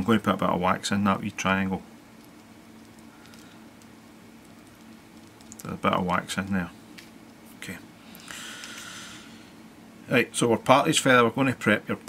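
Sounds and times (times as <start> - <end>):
faint steady hum: 0.0 - 12.0
light handling ticks: 2.1 - 7.4.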